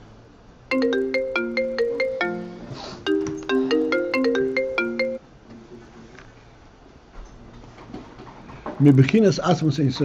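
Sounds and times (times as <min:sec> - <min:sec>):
phone ringtone bell-like notes: 0:00.7 - 0:05.2.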